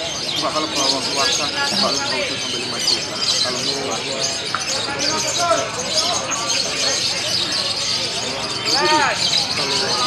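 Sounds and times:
birds twittering: 0.0 - 10.0
crowd talking: 0.0 - 10.0.

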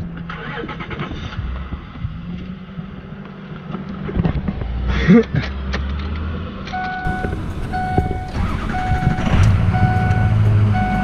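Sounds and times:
vehicle engine humming inside cab: 0.0 - 11.0.

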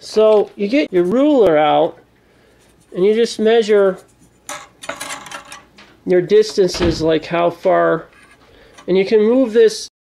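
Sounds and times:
ruler clattering and scraping: 4.1 - 5.8, 8.1 - 9.2.

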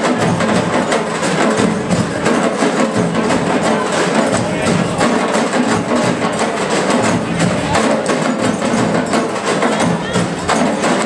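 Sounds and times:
drum ensemble playing fast rhythm: 0.0 - 11.0.

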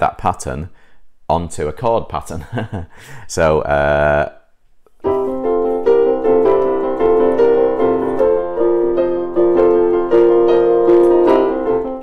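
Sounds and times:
digital piano rock and roll pattern: 5.1 - 12.0.

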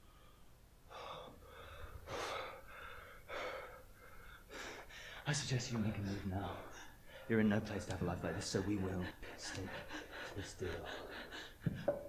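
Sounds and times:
man breathing hard: 0.0 - 5.2, 9.2 - 12.0.

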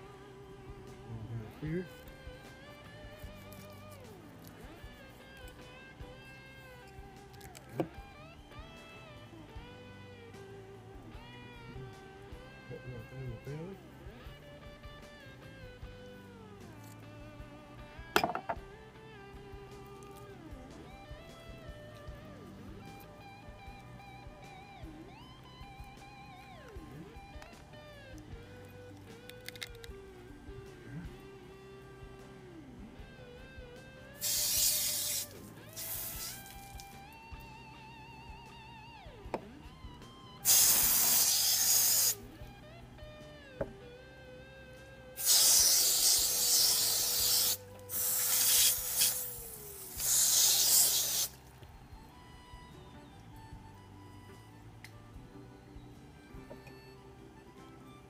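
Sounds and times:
guitar music with wavering melody: 0.0 - 58.0
loud hissing bursts: 34.2 - 36.7, 40.4 - 42.2, 45.2 - 51.4.

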